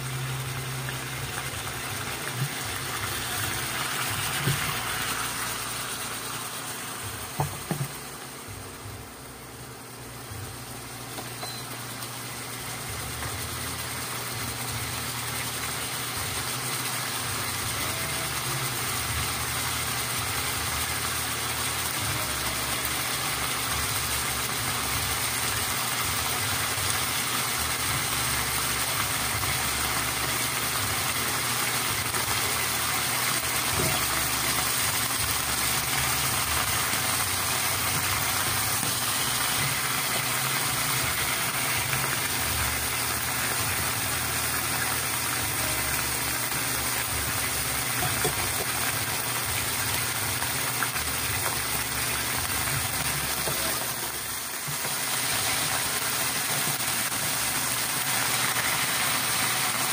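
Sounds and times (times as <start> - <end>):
food sizzling in hot oil: 0.0 - 59.9.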